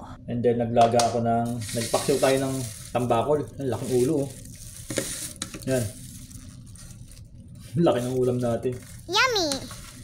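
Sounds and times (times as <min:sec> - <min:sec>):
plastic wrapping crinkling: 0:01.6 - 0:10.0.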